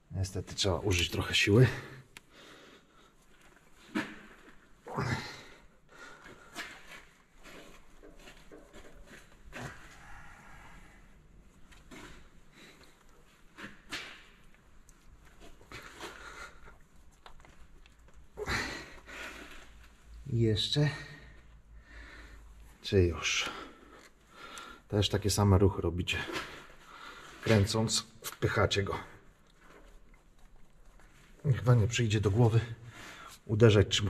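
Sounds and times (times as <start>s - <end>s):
person breathing with effort: 8.9s - 11.3s, 18.4s - 19.8s, 20.9s - 22.7s, 23.5s - 24.9s.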